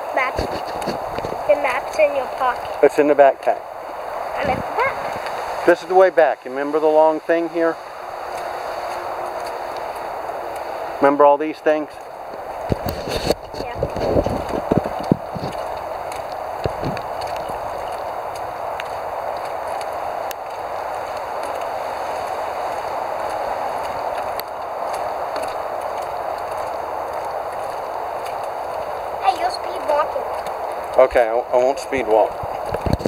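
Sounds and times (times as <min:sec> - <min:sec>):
footsteps on wooden boardwalk: 0:00.0 - 0:33.0
steady hiss: 0:00.0 - 0:33.0.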